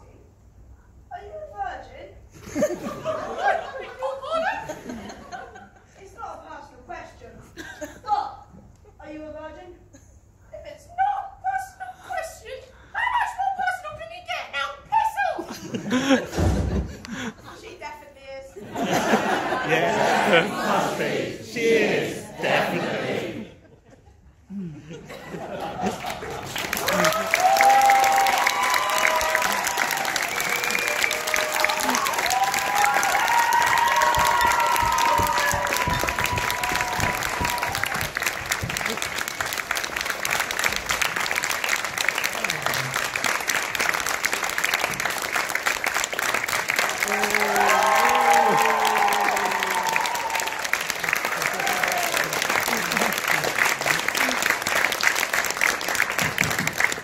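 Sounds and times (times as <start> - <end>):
audience applauding: 25.5 - 57.0
cheers and whoops: 26.7 - 38.2, 47.0 - 52.4.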